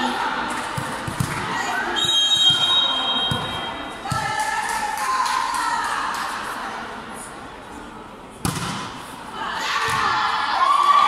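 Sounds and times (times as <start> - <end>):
referee's whistle blast: 2.0 - 3.8.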